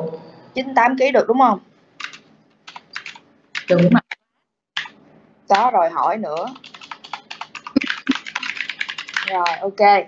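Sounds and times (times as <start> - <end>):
computer keyboard typing: 2.0 - 4.2, 4.8 - 9.7
person speaking: 2.7 - 4.2, 4.8 - 10.0.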